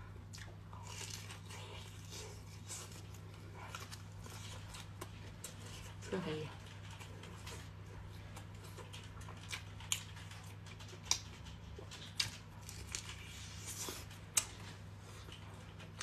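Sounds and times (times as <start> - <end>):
chewing sausage: 0.0 - 16.0
steady low hum: 0.0 - 16.0.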